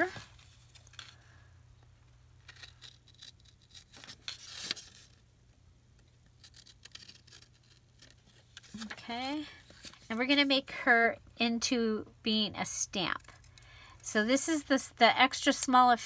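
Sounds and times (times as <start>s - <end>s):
scissors snipping paper: 6.4s - 8.9s.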